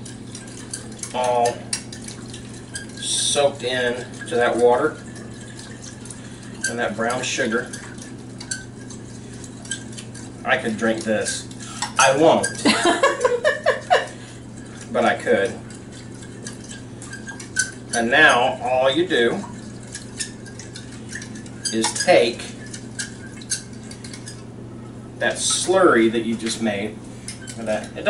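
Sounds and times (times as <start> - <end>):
fork stirring liquid in glass bowl: 0.0 - 28.0
fork clinking against glass bowl: 11.6 - 12.8, 15.7 - 17.9.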